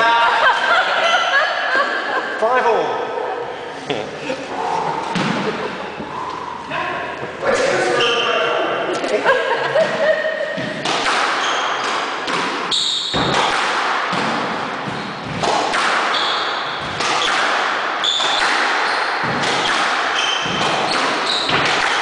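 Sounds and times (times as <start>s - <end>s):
squash ball hitting rackets and walls: 5.1s - 5.6s, 9.8s - 22.0s
shoes squeaking on wooden floor: 20.2s - 21.7s.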